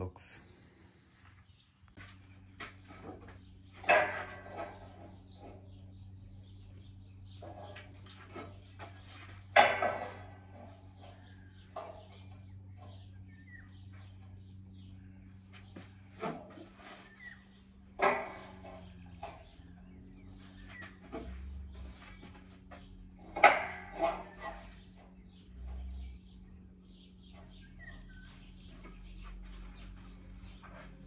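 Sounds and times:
steady low hum: 0.0 - 31.0
metal clanks: 2.6 - 5.9, 6.5 - 13.1, 17.8 - 26.0
faint bird chirps: 24.3 - 31.0.

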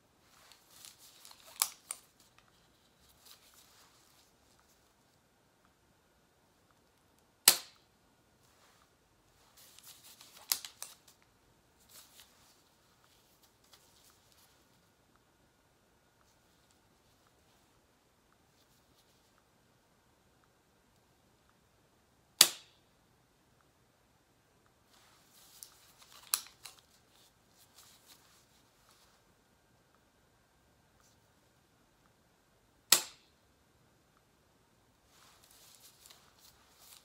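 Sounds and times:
pen firing with sharp snap: 7.4 - 7.8, 22.4 - 22.8, 32.9 - 33.3.

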